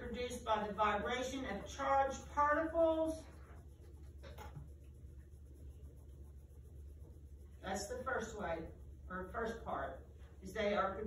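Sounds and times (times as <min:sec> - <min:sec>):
low room hum: 0:00.0 - 0:11.0
pencils scratching on paper: 0:00.0 - 0:11.0.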